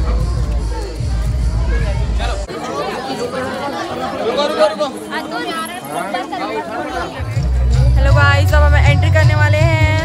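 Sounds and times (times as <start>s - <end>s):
bass-heavy music: 0.0s - 2.5s, 7.2s - 10.0s
crowd chattering: 0.0s - 10.0s.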